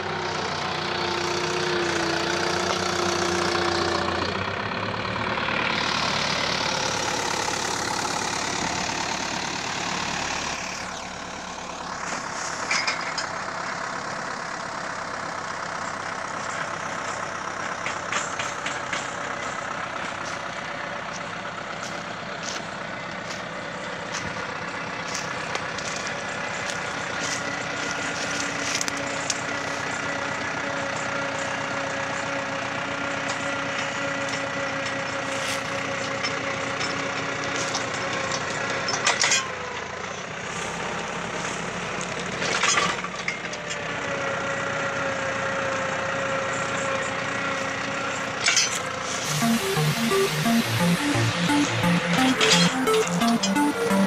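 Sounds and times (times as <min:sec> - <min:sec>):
earth auger boring soil: 0:00.0 - 0:39.8, 0:47.4 - 0:49.3
tractor engine running: 0:00.0 - 0:54.0.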